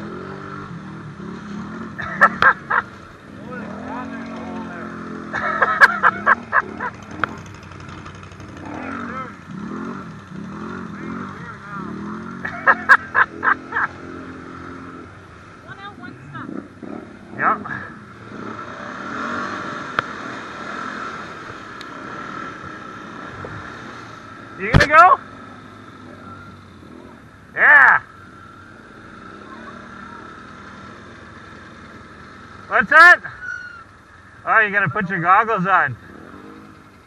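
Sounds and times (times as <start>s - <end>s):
atv engine running: 0.0s - 37.0s
wind and tyre noise: 0.0s - 37.0s
riders shouting: 2.0s - 18.2s, 23.6s - 36.8s.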